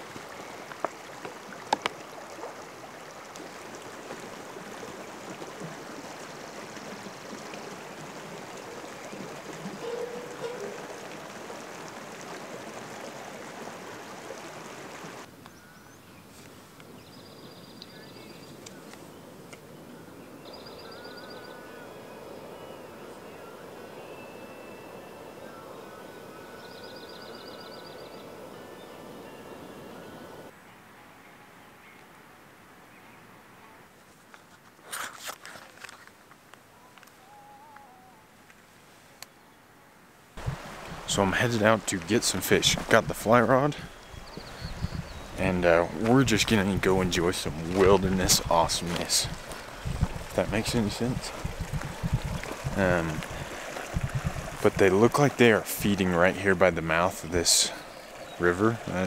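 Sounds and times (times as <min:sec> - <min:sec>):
small stream running: 0:00.0 - 0:30.6, 0:40.1 - 0:59.0
bird trilling: 0:09.8 - 0:11.1.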